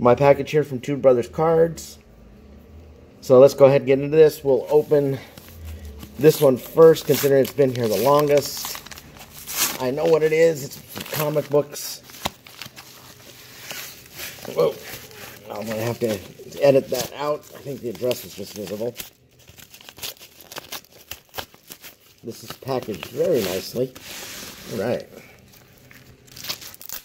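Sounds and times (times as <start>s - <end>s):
bubble wrap crinkling: 4.5s - 27.0s
paper mailers rustling and scraping: 4.5s - 27.0s.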